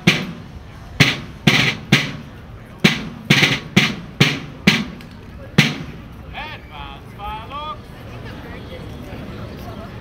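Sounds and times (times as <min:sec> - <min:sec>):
field drum beats: 0:00.0 - 0:06.0.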